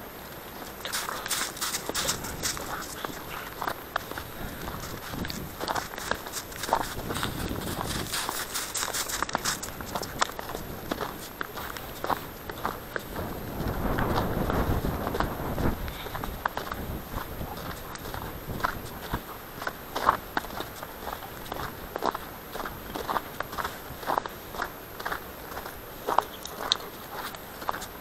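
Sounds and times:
footsteps on snow: 0:00.2 - 0:28.0.

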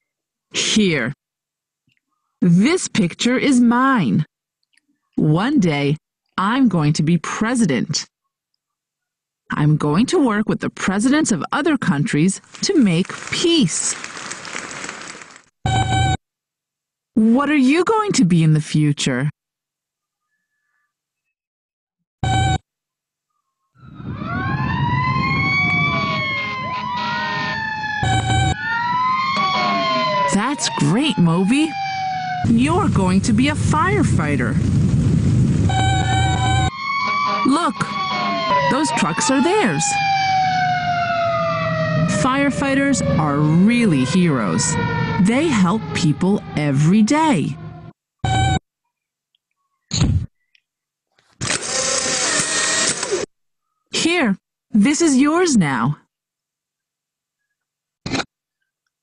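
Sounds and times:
electronic robot beep: 0:22.2 - 0:22.6, 0:35.7 - 0:36.7, 0:48.3 - 0:48.6
fire engine sirens wailing: 0:23.8 - 0:34.2, 0:35.6 - 0:48.6
low rumble: 0:32.5 - 0:36.7
camera print motor whirring: 0:51.4 - 0:53.3.

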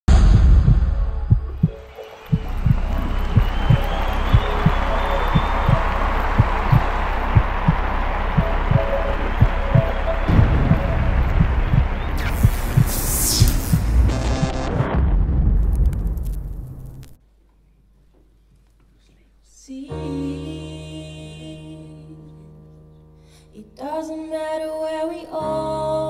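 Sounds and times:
low thumping beat: 0:00.1 - 0:16.6.

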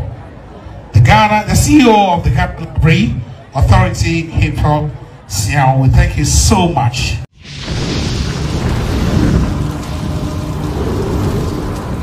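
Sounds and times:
low rumble with hiss: 0:07.7 - 0:12.0.

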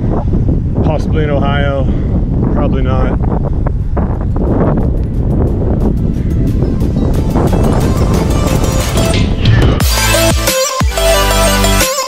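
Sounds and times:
wind rushing over microphone: 0:00.0 - 0:09.8
electronic music with steady beat: 0:04.8 - 0:12.0.

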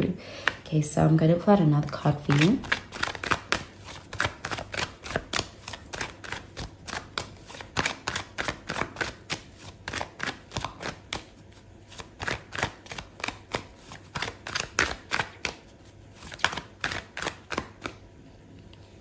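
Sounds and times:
cards being shuffled: 0:01.9 - 0:18.0.

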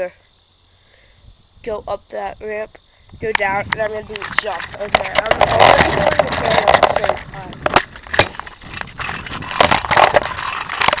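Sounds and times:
scooter wheels rattling on concrete: 0:03.2 - 0:11.0.

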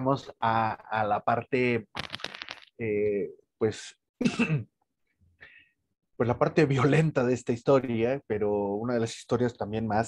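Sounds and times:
man clearing his throat: 0:04.2 - 0:04.7.

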